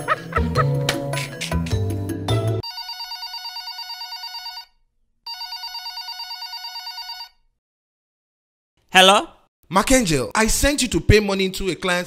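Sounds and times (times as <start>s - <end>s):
background music: 0.0s - 2.6s
mobile phone ringing: 2.6s - 7.4s.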